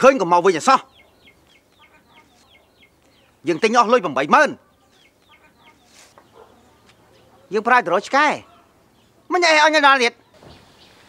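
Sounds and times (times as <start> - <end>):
chicks peeping: 0.3 - 9.3, 10.2 - 11.0.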